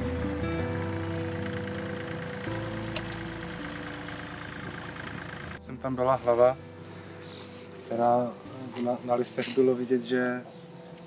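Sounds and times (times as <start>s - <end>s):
tractor engine hum: 0.0s - 8.9s
background music: 0.0s - 11.0s.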